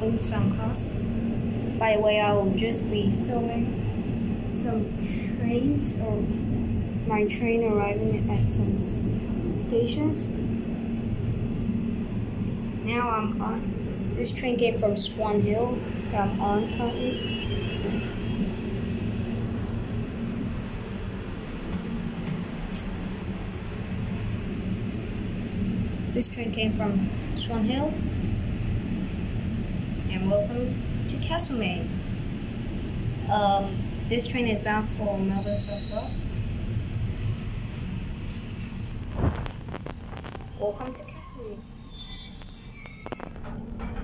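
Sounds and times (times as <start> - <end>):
train carriage rumbling on track: 0.0 - 44.0
high-pitched train squeal: 16.4 - 18.8, 34.8 - 36.8, 37.8 - 43.6.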